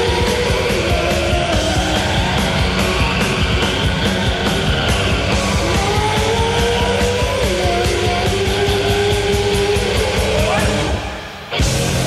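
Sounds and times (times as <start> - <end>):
driving drum beat: 0.0 - 12.0
long held lead guitar notes: 0.0 - 12.0
rock band playing: 0.0 - 12.0.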